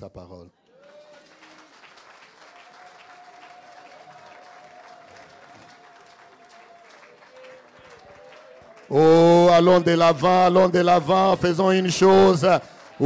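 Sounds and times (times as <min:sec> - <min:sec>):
congregation applauding: 0:00.6 - 0:13.0.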